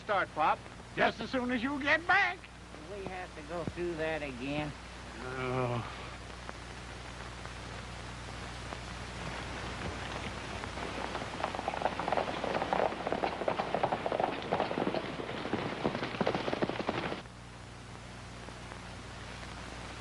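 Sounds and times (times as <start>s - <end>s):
horses galloping hoofbeats: 9.1s - 17.2s.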